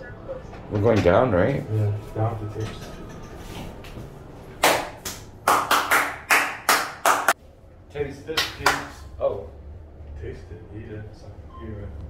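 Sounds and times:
sharp hand claps: 0:04.6 - 0:07.4, 0:08.3 - 0:09.0.

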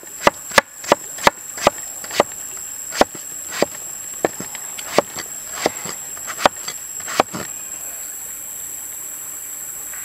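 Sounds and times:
knife chopping on wooden board: 0:00.2 - 0:07.5.

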